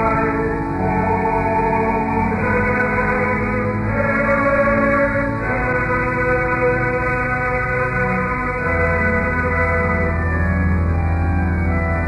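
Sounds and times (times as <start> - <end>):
choir singing held chords: 0.0 - 10.6
organ: 0.0 - 12.0.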